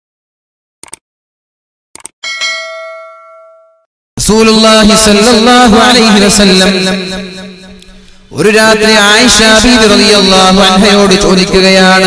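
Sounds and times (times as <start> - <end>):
bright bell ding: 2.2 - 3.9.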